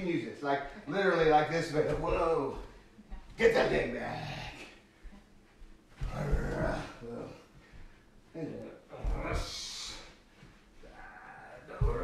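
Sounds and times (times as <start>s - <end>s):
feet thudding on rug: 4.8s - 8.2s, 8.9s - 10.9s, 11.7s - 12.0s
grunt of effort: 6.0s - 7.4s.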